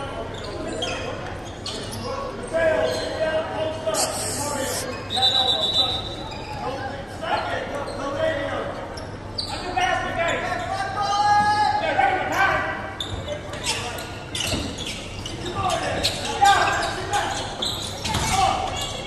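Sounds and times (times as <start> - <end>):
voices echoing in gym: 0.0 - 19.0.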